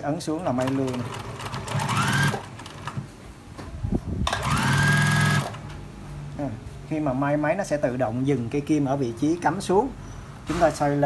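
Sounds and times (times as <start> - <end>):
sewing machine stitching: 0.4 - 3.0, 4.3 - 5.6.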